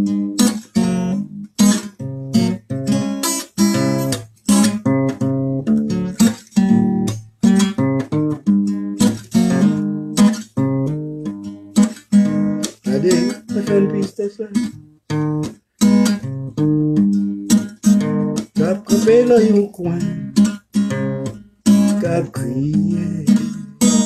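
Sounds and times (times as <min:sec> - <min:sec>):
acoustic guitar strumming: 0:00.0 - 0:24.0
man singing: 0:12.8 - 0:14.8, 0:18.6 - 0:20.4, 0:21.8 - 0:24.0.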